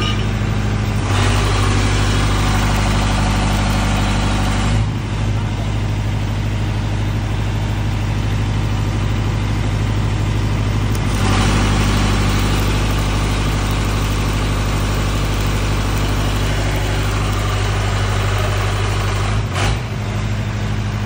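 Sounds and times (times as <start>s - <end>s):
generator engine running: 0.0s - 21.0s
welding arc hissing crackle: 10.9s - 19.4s.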